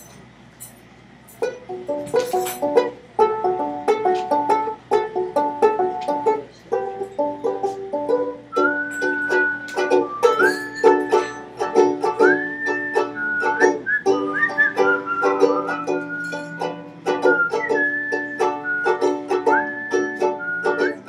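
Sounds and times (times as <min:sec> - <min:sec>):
banjo picking: 0:01.4 - 0:21.0
person whistling a melody: 0:07.0 - 0:21.0.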